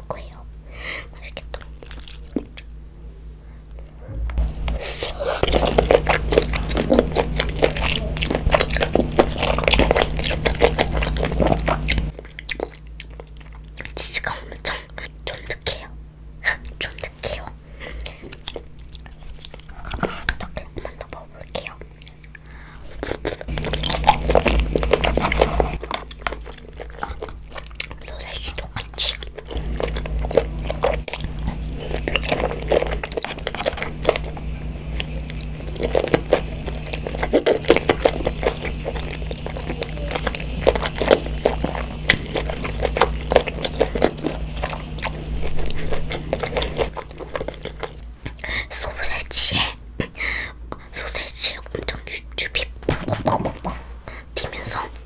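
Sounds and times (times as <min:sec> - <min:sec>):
child chewing: 0:00.0 - 0:02.9, 0:03.6 - 0:55.0
low steady hum: 0:00.0 - 0:55.0.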